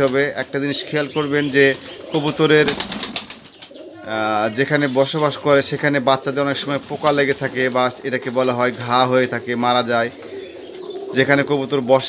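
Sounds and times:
man talking: 0.0 - 2.9, 4.0 - 10.4, 11.0 - 12.0
pigeons cooing: 0.0 - 12.0.

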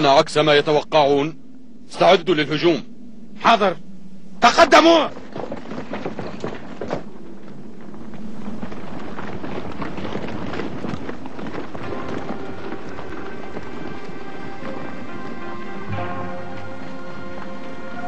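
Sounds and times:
many running footsteps: 4.5 - 18.0
music: 11.8 - 18.0.

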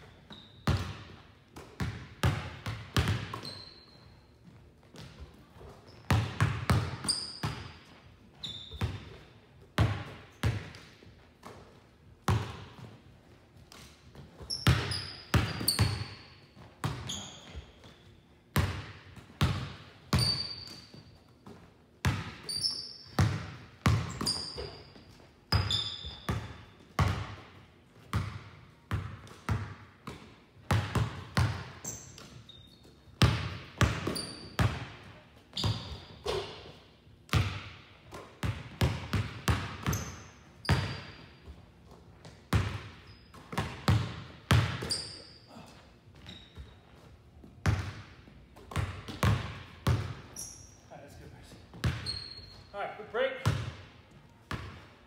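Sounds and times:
sneaker squeaks: 0.0 - 1.2, 3.0 - 9.4, 13.7 - 18.5, 20.1 - 26.8, 31.7 - 34.8, 35.4 - 37.0, 39.7 - 53.6
basketballs bouncing on wood floor: 0.3 - 13.0, 13.7 - 32.6, 33.2 - 41.6, 42.2 - 50.7, 51.4 - 52.7, 53.4 - 54.9.

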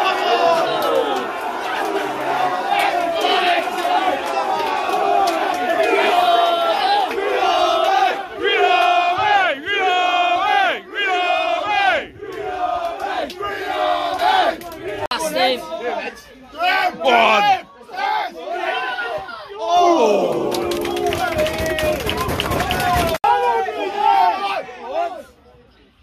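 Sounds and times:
crowd chanting and shouting: 0.0 - 25.8.

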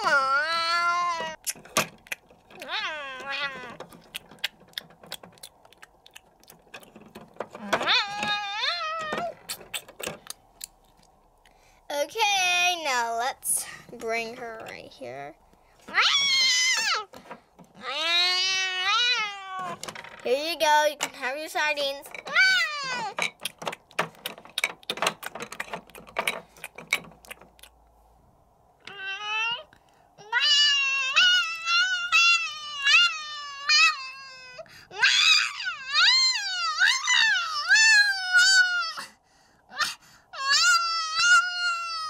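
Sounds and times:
plastic toys clicking: 1.3 - 8.4, 22.0 - 27.8
person imitating cat meows: 2.6 - 3.8, 28.9 - 39.1.

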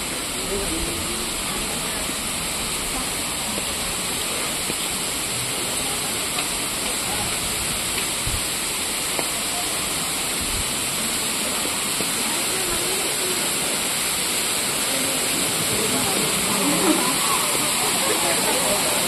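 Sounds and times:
waterfall rushing: 0.0 - 19.0.

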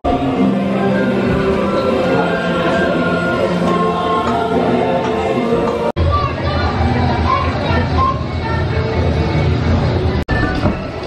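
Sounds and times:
attraction scene soundtrack: 0.0 - 10.2.

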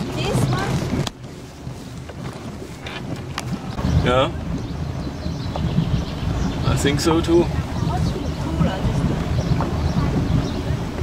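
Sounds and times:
motorboat running: 0.0 - 11.0
wind on microphone: 0.0 - 11.0.

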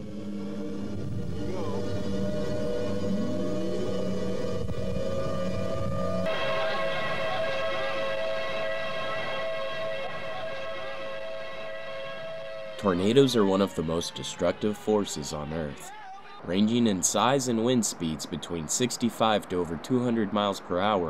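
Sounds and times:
low hum: 0.0 - 13.9
two-tone warning siren: 0.0 - 15.0.

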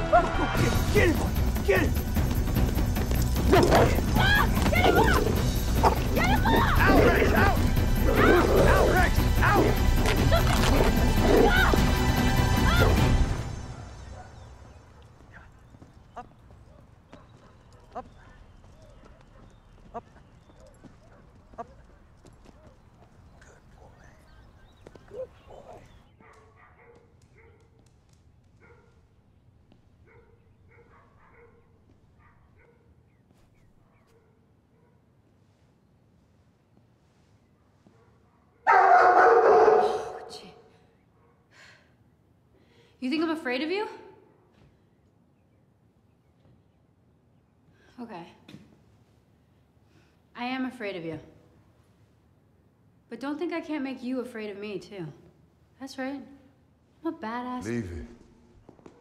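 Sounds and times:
people shouting: 3.3 - 13.2
dog making pitched sounds: 3.4 - 9.8.

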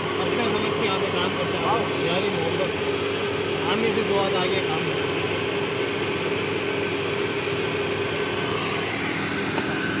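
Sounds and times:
machine hum: 0.0 - 10.0.

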